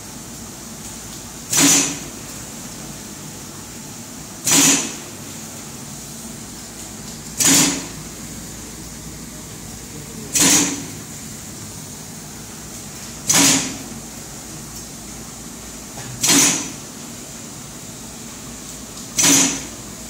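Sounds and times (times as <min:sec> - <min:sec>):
steady machine hum: 0:00.0 - 0:20.0
loud mechanical stroke: 0:04.4 - 0:05.0, 0:10.4 - 0:11.0, 0:13.3 - 0:13.8, 0:16.2 - 0:16.8, 0:19.2 - 0:19.7.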